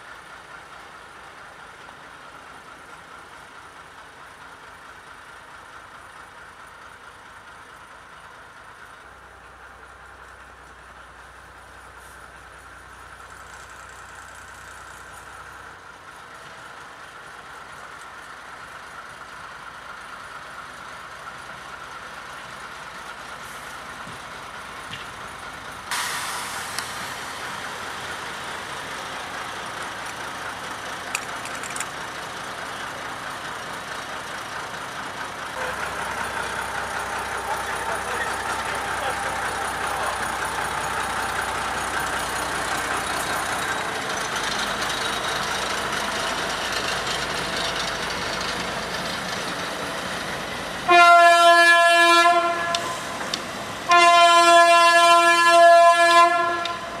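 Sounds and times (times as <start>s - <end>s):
diesel locomotive engine running: 0.0s - 57.0s
locomotive horn blasts: 50.9s - 53.2s, 53.9s - 57.0s.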